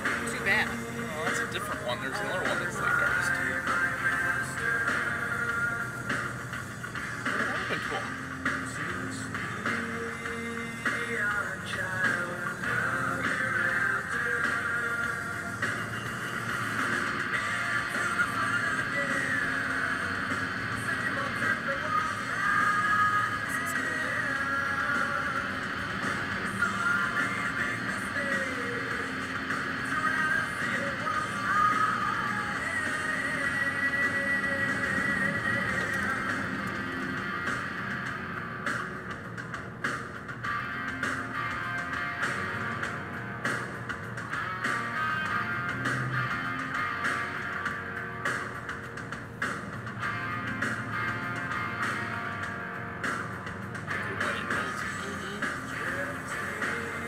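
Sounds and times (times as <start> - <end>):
music from car radio: 0.0 - 57.0.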